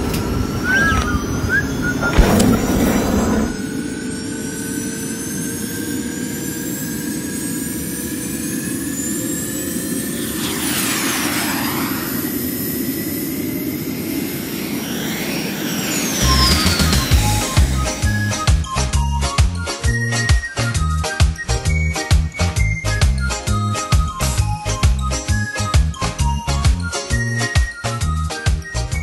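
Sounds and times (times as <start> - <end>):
jet engine rushing and whining: 0.0 - 18.9
whoosh with falling sweeps: 0.6 - 4.4, 9.0 - 18.8
thump: 2.1 - 3.6.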